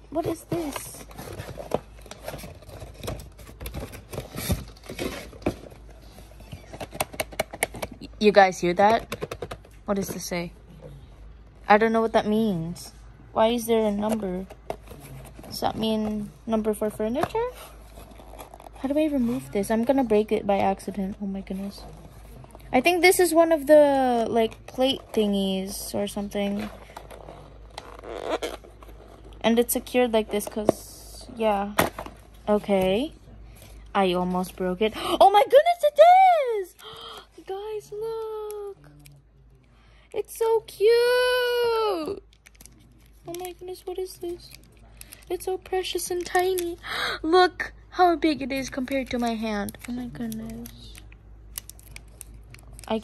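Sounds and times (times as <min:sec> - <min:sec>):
paper packaging rustling: 0:00.1 - 0:07.8.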